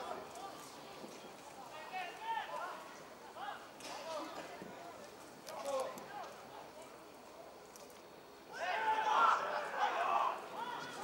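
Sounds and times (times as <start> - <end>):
distant shouting voices: 8.5 - 11.0.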